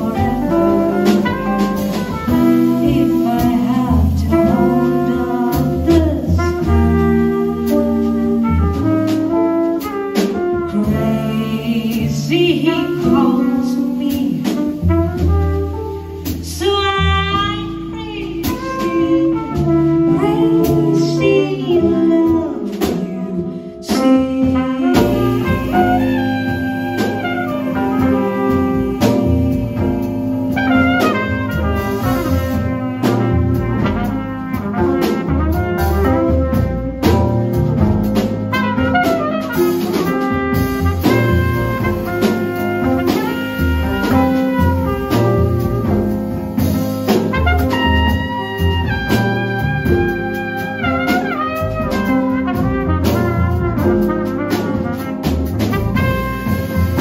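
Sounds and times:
double bass: 0.0 - 57.0
drum kit with cymbals: 0.0 - 57.0
trumpet melody: 0.0 - 57.0.

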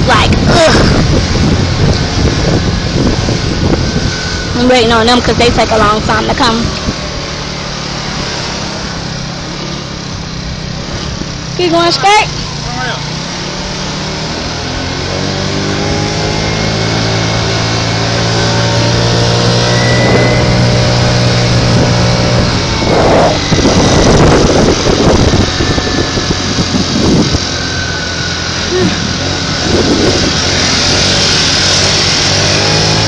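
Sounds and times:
moped engine running: 0.0 - 33.0
wind buffeting microphone: 0.0 - 33.0.

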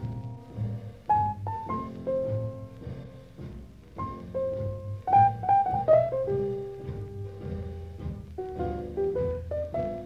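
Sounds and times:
bass line: 0.0 - 10.0
jazz piano playing blues: 0.0 - 10.0.

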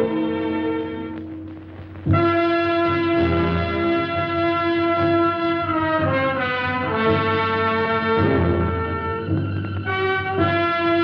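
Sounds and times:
orchestral brass and strings chords: 2.1 - 11.0.

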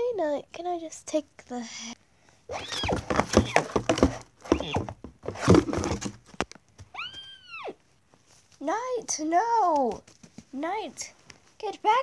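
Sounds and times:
knocks and rustles of toy: 2.5 - 6.9, 9.7 - 10.6
girl making whinnying noises: 6.9 - 7.8.

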